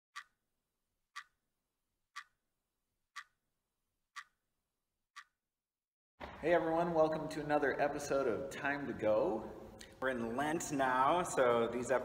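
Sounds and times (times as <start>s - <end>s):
clock ticking: 0.2s - 0.4s, 1.1s - 1.4s, 2.1s - 2.4s, 3.2s - 3.4s, 4.1s - 4.4s, 5.2s - 5.4s.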